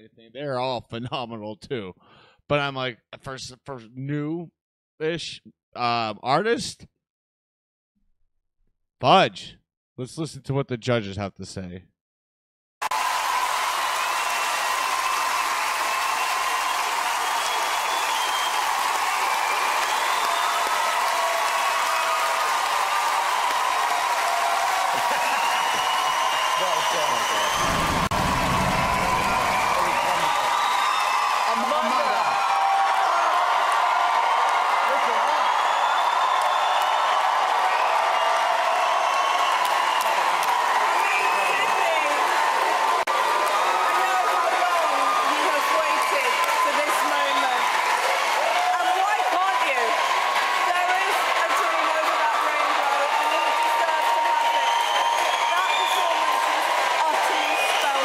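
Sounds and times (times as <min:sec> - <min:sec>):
audience applauding and cheering: 0:12.8 - 0:58.0
whoops and shouts: 0:12.8 - 0:58.0.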